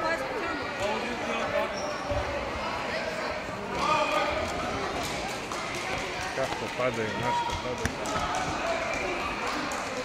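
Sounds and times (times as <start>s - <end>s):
voices echoing in hall: 0.0s - 10.0s.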